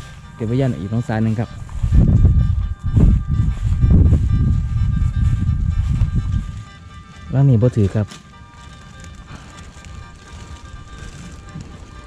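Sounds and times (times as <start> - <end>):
soft background music: 0.0 - 12.0
wind buffeting microphone: 0.0 - 12.0.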